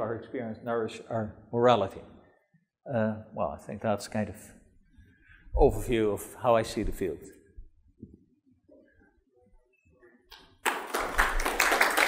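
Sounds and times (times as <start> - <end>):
audience applause: 10.6 - 12.0.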